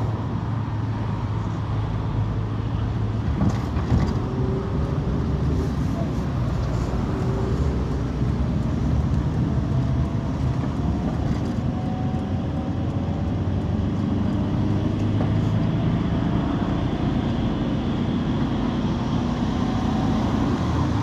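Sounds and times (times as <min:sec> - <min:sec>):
bus engine and road noise: 0:00.0 - 0:21.0.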